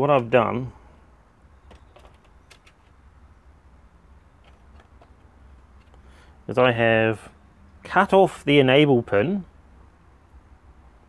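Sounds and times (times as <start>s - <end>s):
light clicks of handling wires: 4.4s - 6.1s.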